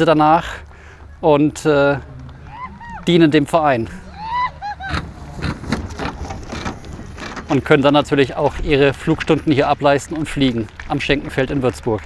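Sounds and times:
rising-and-falling call: 1.7s - 7.3s
glider undercarriage rumbling on grass: 1.8s - 11.3s.

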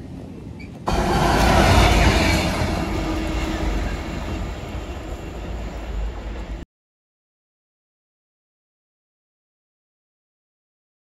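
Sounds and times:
diesel locomotive engine rumble: 0.0s - 6.6s
wheel and rail noise: 0.0s - 6.6s.

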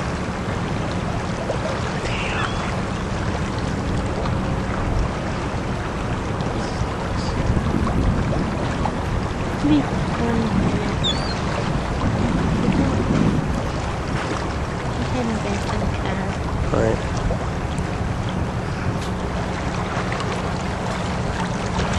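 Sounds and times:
low hum of small boat: 0.0s - 21.9s
water noise: 0.0s - 21.9s
wind rumbling on microphone: 0.0s - 21.9s.

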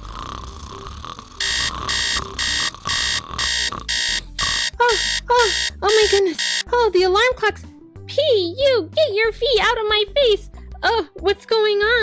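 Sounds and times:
alarm clock beeping: 1.4s - 6.7s.

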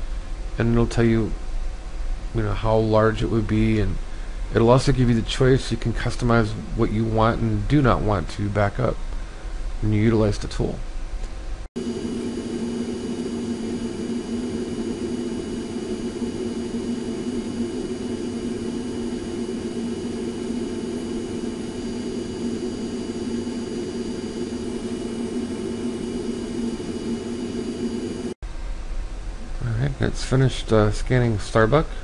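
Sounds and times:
machine whir with low hum: 0.0s - 32.0s.

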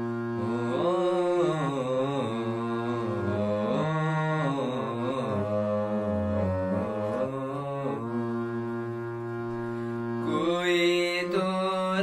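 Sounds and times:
harmonium playing melody: 0.0s - 12.0s.

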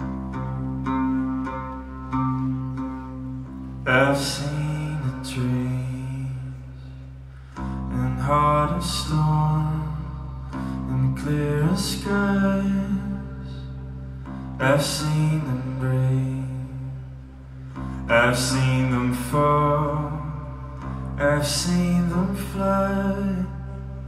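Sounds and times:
plucked oud: 0.0s - 4.0s.

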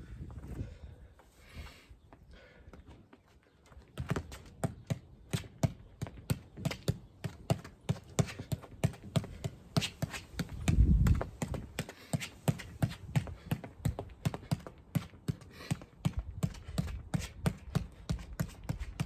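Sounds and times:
foot kicking football: 3.9s - 19.0s.

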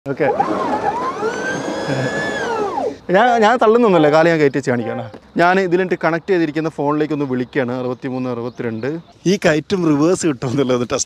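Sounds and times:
electric scooter motor whining: 0.1s - 3.1s.

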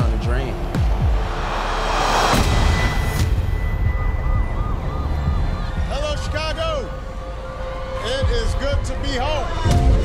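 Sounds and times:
sharp hit: 1.2s - 4.3s
emergency siren yelping: 3.3s - 8.0s.

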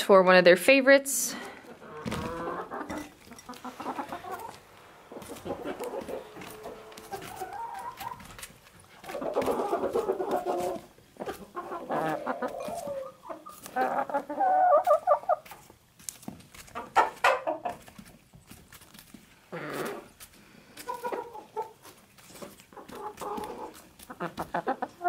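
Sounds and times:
hens clucking: 1.5s - 18.5s, 19.2s - 25.0s.

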